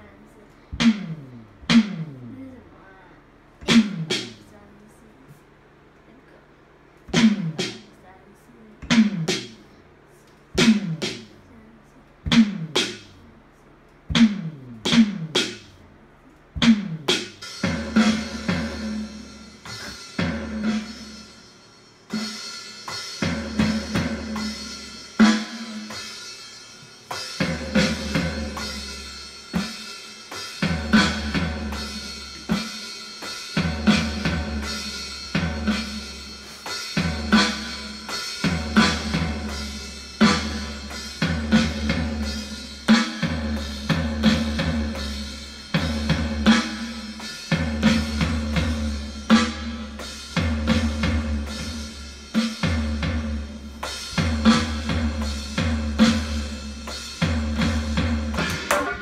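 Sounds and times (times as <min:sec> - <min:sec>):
electronic drum kit groove: 0:00.7 - 0:02.6, 0:03.6 - 0:05.4, 0:06.9 - 0:08.0, 0:08.8 - 0:59.0.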